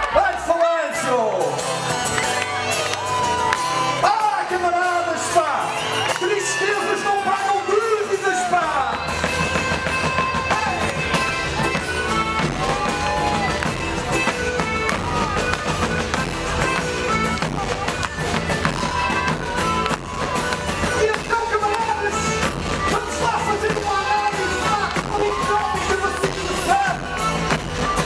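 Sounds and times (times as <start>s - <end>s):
drums: 0.0s - 28.0s
live band playing upbeat song: 0.0s - 28.0s
bass guitar: 0.9s - 28.0s.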